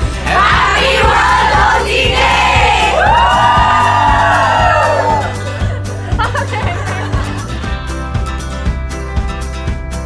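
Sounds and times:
background music with bass: 0.0s - 10.0s
people cheering and whooping: 0.2s - 7.0s
long held shout: 2.5s - 5.4s.

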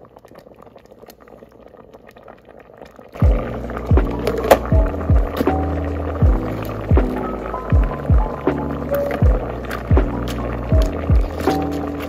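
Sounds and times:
music with kick-drum beat: 3.2s - 12.0s
spatula stirring porridge in metal pot: 3.2s - 12.0s.

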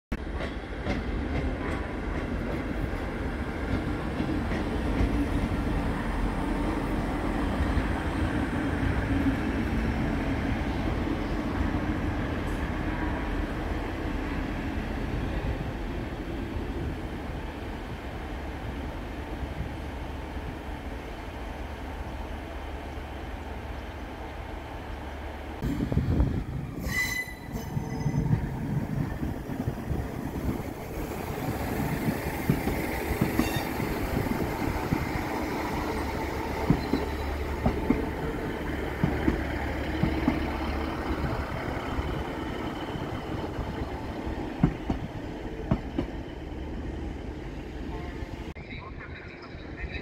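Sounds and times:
diesel train engine drone: 0.2s - 50.0s.

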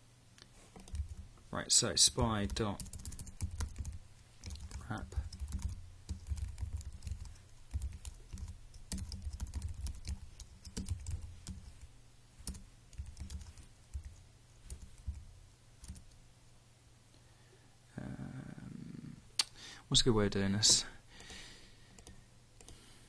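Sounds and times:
typing on computer keyboard: 0.8s - 1.2s, 2.4s - 11.8s, 12.4s - 15.1s, 21.9s - 22.8s.

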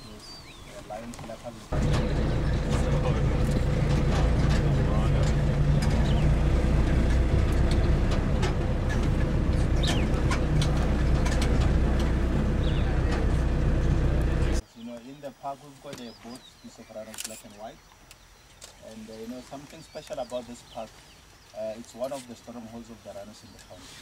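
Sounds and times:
vehicle engine humming: 1.0s - 14.6s
clicks and knocks: 7.0s - 12.3s.

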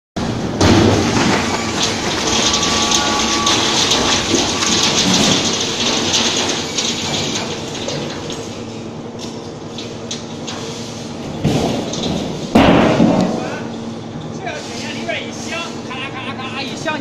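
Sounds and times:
metal shredder grinding: 0.2s - 15.8s.

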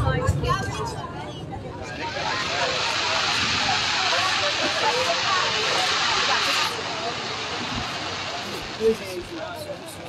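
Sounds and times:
onlookers' voices: 0.0s - 10.0s
fireworks hissing: 1.7s - 10.0s.

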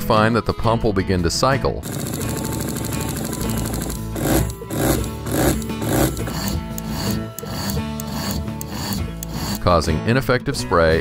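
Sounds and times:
background music: 0.0s - 11.0s
sprayer pump cycling on and off: 1.8s - 9.6s.

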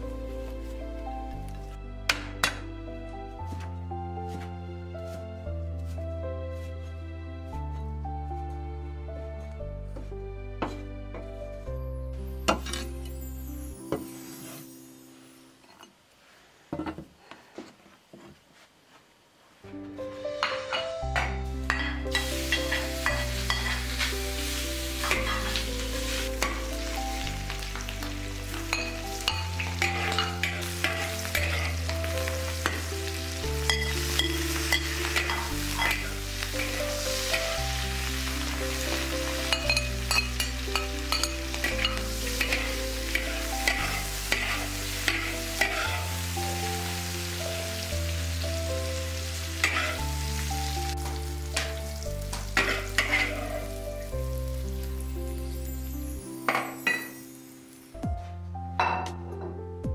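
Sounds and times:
food sizzling in hot fat: 12.7s - 15.6s, 20.1s - 58.0s
metal spatula scraping wok: 28.7s - 37.4s, 38.9s - 46.2s, 49.6s - 50.1s, 52.5s - 53.8s.

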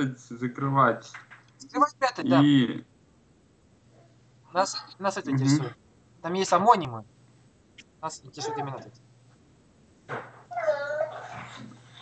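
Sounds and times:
short whining vocal sound: 10.5s - 12.0s.

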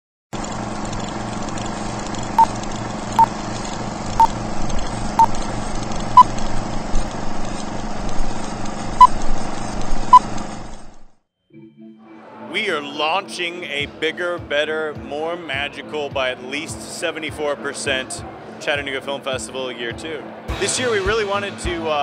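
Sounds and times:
film projector whirring: 0.4s - 11.1s.

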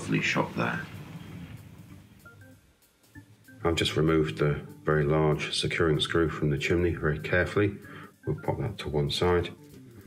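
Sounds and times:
soft music notes: 0.0s - 10.0s.

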